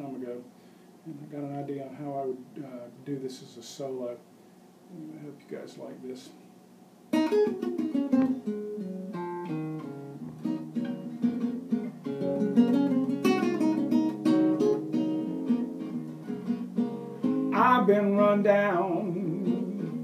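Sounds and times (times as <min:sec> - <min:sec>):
classical guitar plucked solo: 0:07.1 - 0:20.0.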